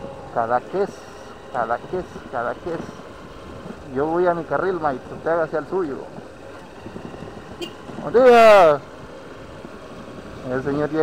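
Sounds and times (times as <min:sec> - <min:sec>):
vehicle on unpaved road: 0:00.0 - 0:11.0.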